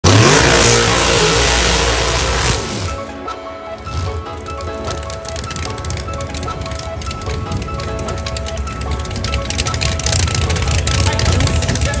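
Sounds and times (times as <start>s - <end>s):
race car engine at full throttle: 0.0s - 12.0s.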